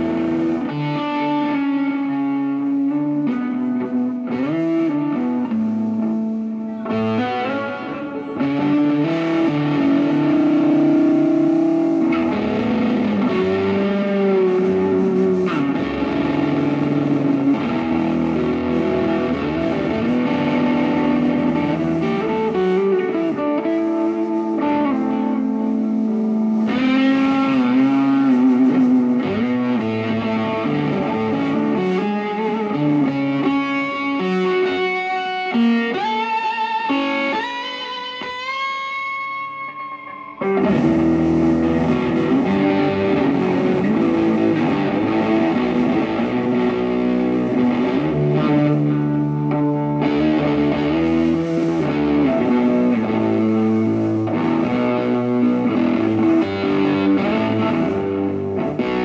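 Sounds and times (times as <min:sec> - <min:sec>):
electric guitar climbing notes: 0:00.0 - 0:59.0
rock band playing live: 0:00.0 - 0:59.0.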